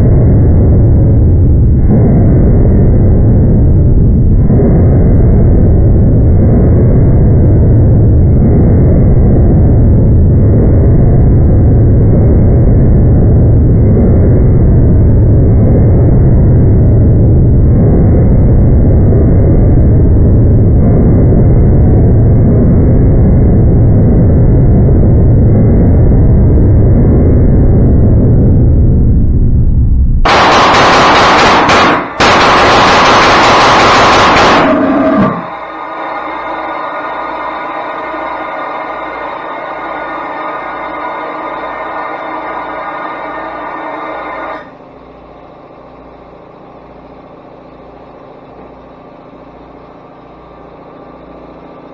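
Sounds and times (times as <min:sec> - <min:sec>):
engine loud low roar: 0:00.0 - 0:51.9.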